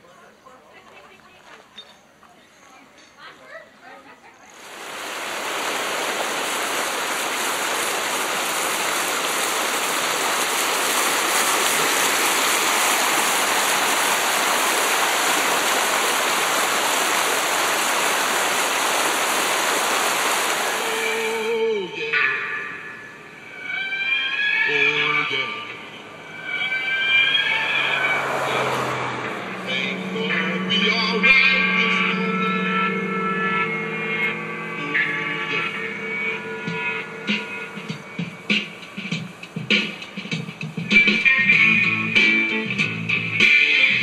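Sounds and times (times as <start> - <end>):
stream running over rocks: 4.5 - 21.7, 26.0 - 31.8.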